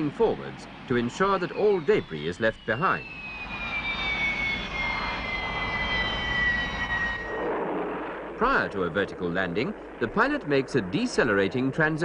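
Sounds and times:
jet engine whine falling in pitch: 0.0 - 12.0.

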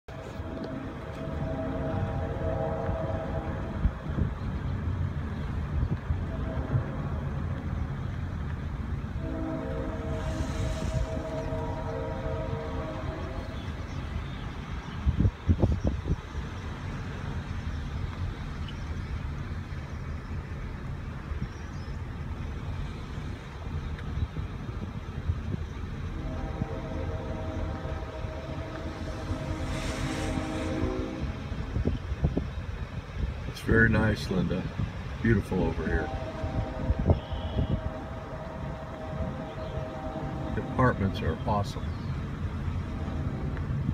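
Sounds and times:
horn chord blasts: 0.1 - 4.3, 6.2 - 7.6, 9.1 - 13.9, 26.0 - 32.1, 35.3 - 43.8
steady low rumble: 0.1 - 43.9.

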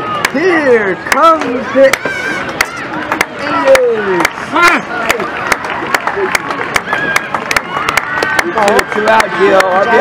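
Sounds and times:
crowd chatter: 0.0 - 10.0
spectators clapping in rhythm: 1.9 - 10.0.

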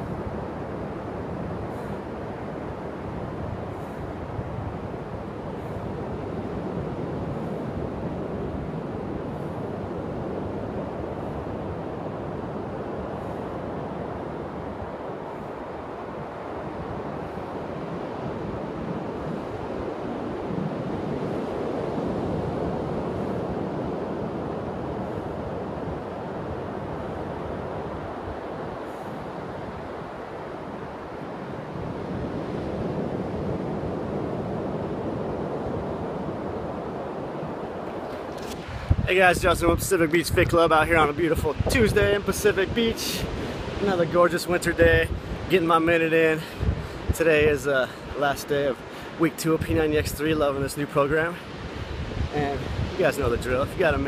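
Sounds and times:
surf breaking on sandy beach: 0.0 - 54.0
wind buffeting microphone: 0.0 - 54.0.

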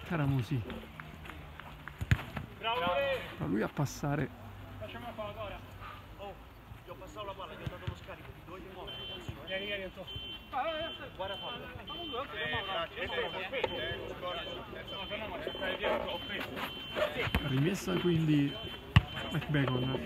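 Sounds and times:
men calling and shouting: 0.0 - 20.0.

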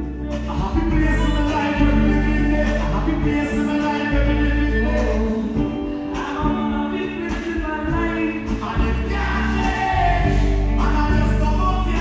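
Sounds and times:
live band playing gospel song: 0.0 - 12.0
male lead vocalist singing: 0.0 - 12.0
backing singers singing: 7.9 - 12.0.

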